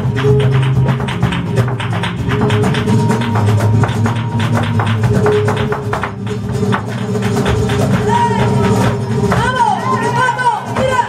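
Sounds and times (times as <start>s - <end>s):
dancer's footwork strikes: 0.0s - 9.5s
flamenco guitar: 0.0s - 11.0s.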